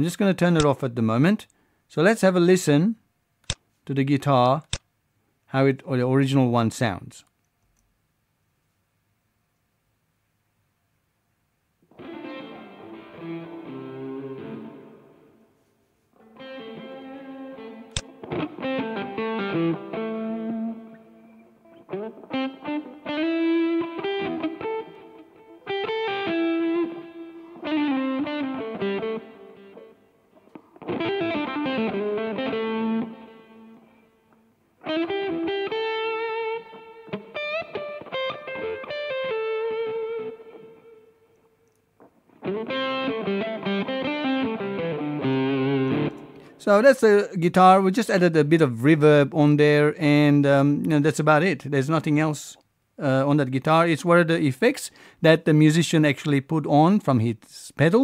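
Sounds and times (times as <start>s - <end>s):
sharp click: 3.4s - 3.6s, 4.6s - 4.9s, 17.9s - 18.1s
clean electric guitar picking: 11.9s - 15.4s, 16.2s - 41.5s, 42.3s - 46.6s.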